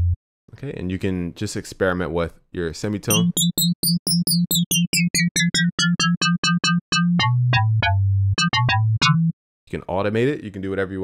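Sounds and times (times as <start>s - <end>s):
metallic bell-like synth notes: 3.1s - 6.0s.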